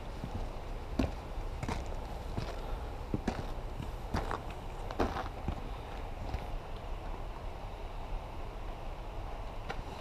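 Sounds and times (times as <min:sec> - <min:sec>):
low steady rumble: 0:00.0 - 0:10.0
footsteps on gravel: 0:00.1 - 0:06.6.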